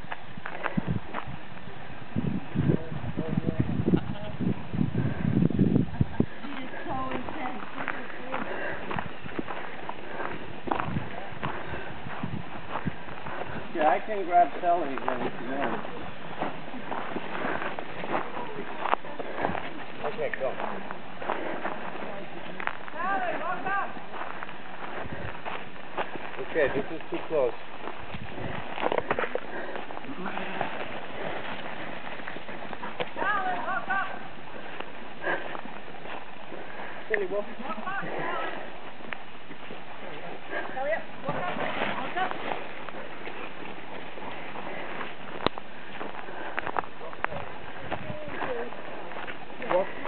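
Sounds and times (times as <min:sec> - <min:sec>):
footsteps on dirt road: 0:00.0 - 0:50.0
sheep hooves on gravel: 0:00.0 - 0:50.0
voices talking: 0:01.6 - 0:50.0
dog paws on gravel: 0:06.3 - 0:50.0.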